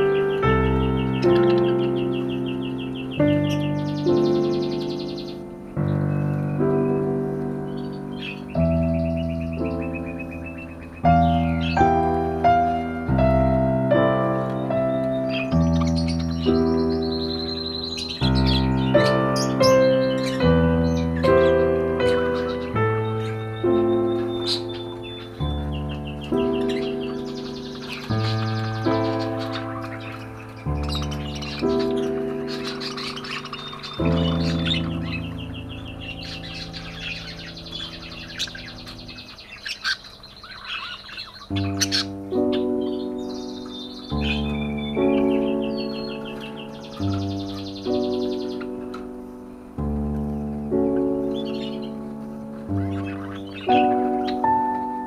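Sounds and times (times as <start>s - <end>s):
budgerigars chirping and warbling: 0.0s - 55.0s
slow gentle piano music: 0.0s - 55.0s.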